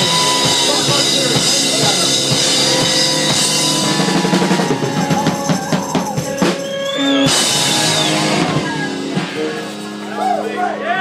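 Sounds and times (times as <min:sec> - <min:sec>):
drum hits: 0:00.0 - 0:09.9
rock band playing: 0:00.0 - 0:11.0.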